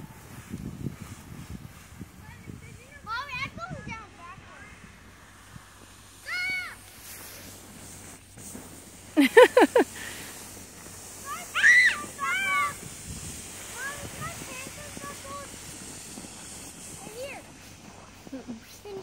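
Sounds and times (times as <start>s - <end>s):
children shouting and squealing: 6.2s - 6.9s, 11.2s - 12.9s
burst of laughter: 9.2s - 10.2s.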